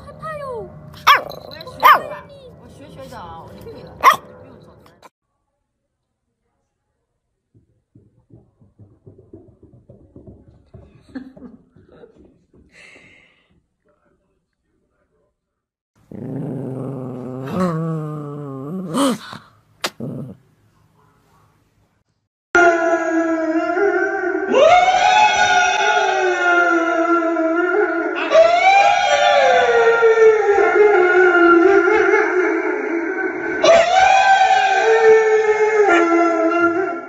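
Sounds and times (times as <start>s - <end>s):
dog barking: 1.0s - 2.2s, 4.0s - 4.4s.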